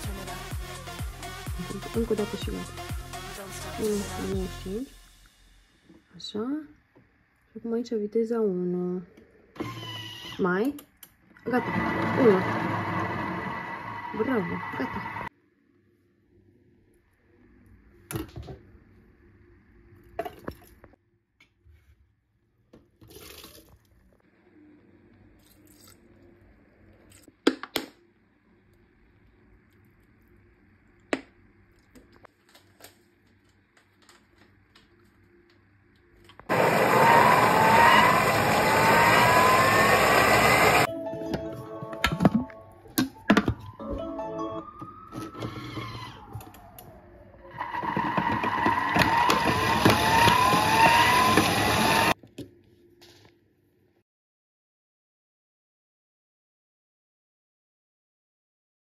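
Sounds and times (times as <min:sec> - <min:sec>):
food processor motor whirring: 0:09.6 - 0:10.4, 0:11.5 - 0:15.3, 0:36.5 - 0:40.9, 0:45.1 - 0:46.7, 0:47.5 - 0:52.2.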